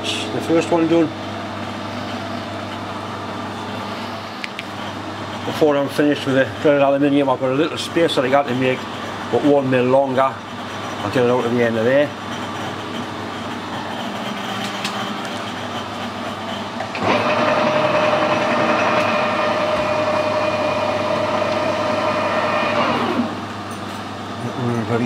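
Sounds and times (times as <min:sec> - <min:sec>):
low shop hum: 0:00.0 - 0:25.0
metal lathe running: 0:00.1 - 0:25.0.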